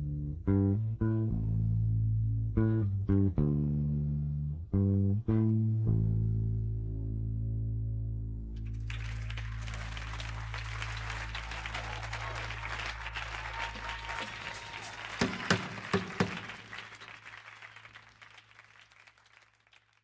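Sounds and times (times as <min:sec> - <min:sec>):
held bass note: 0:00.0 - 0:11.7
audience applause: 0:08.6 - 0:20.0.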